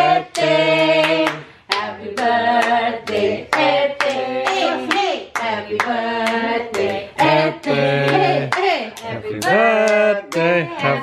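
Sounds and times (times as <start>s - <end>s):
group singing a birthday tune: 0.0s - 11.0s.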